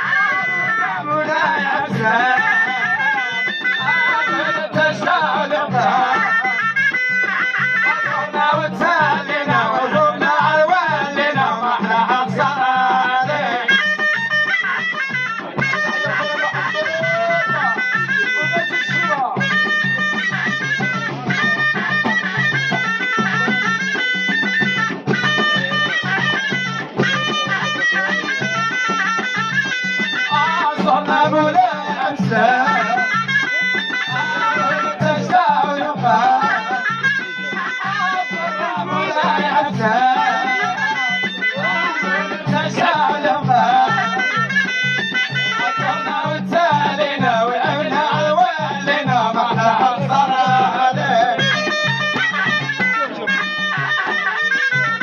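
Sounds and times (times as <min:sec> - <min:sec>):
men singing: 0:00.0 - 0:14.3, 0:29.6 - 0:52.6
frame drums beating: 0:00.0 - 0:55.0
shawm playing ornamented melody: 0:00.0 - 0:55.0.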